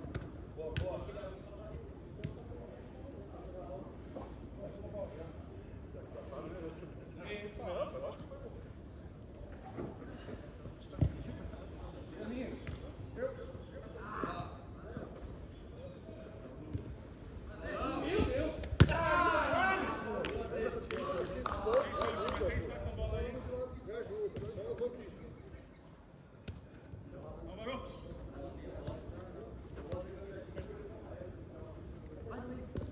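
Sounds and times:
players shouting: 0:17.6 - 0:21.2
football being kicked: 0:18.7 - 0:19.0.

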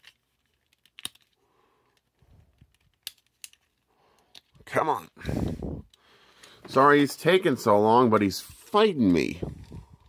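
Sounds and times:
soft handling noise: 0:00.0 - 0:04.8
plastic parts clicking and rubbing: 0:00.0 - 0:05.2.

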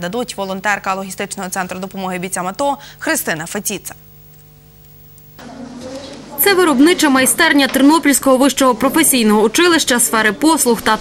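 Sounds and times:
even background noise: 0:00.0 - 0:11.0
faint electrical hum with tones: 0:00.0 - 0:11.0.

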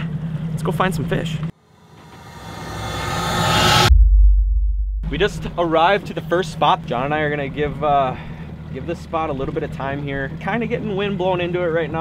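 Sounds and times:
rising whoosh: 0:01.7 - 0:06.4
deep boom: 0:01.9 - 0:06.7.

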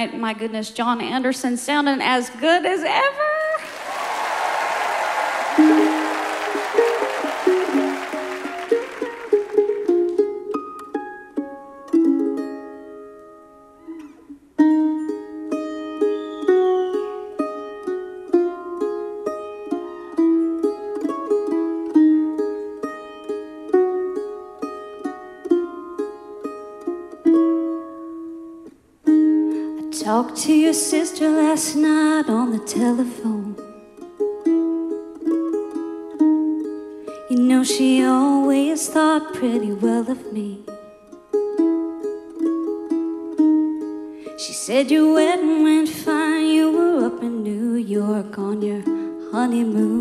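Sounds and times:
audience applause: 0:03.6 - 0:10.2
mandolin melody: 0:04.8 - 0:50.0.

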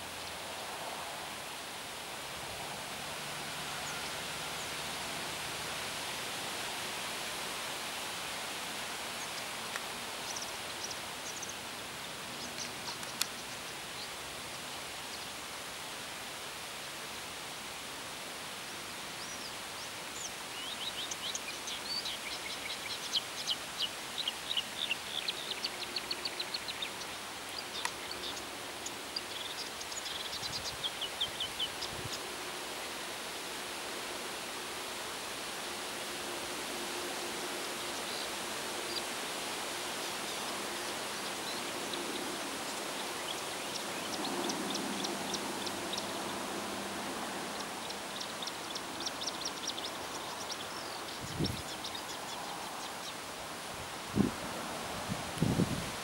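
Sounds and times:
wind: 0:00.0 - 0:56.0.

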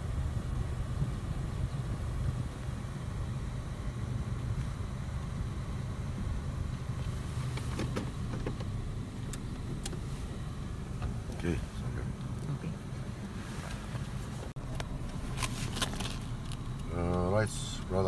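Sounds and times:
car engine and road rumble: 0:00.0 - 0:18.0.

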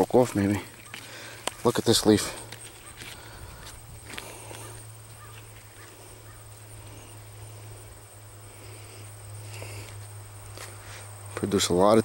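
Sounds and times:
light footsteps through plants: 0:00.0 - 0:07.0, 0:09.4 - 0:11.6
rustling of leafy plants: 0:00.0 - 0:12.0
steady low hum: 0:00.0 - 0:12.0.

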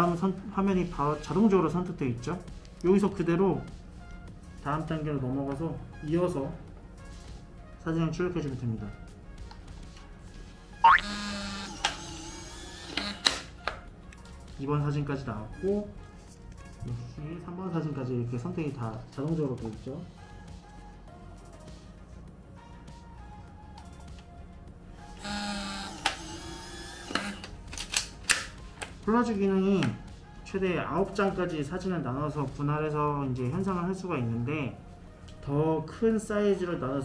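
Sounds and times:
background music: 0:00.0 - 0:37.0
photo printer motor running: 0:11.1 - 0:13.3, 0:25.2 - 0:27.5.

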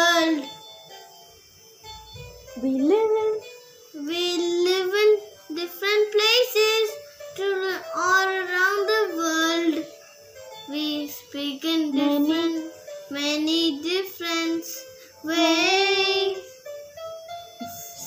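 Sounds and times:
child singing: 0:00.0 - 0:00.5, 0:04.0 - 0:09.9, 0:10.7 - 0:16.5.

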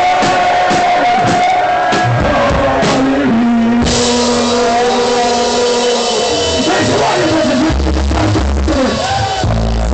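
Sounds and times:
distorted electric guitar chord: 0:03.5 - 0:08.8.

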